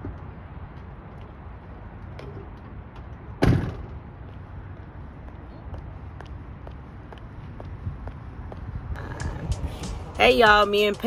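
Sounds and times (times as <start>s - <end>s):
truck door slamming: 3.4s - 4.0s.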